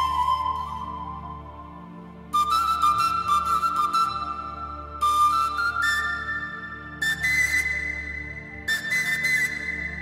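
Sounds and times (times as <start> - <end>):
breathy flute melody: 0.0 - 10.0
low sustained orchestral accompaniment: 0.0 - 10.0.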